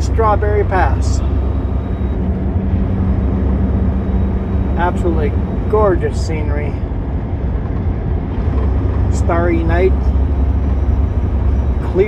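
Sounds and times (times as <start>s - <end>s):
truck engine and road noise: 0.0s - 12.0s.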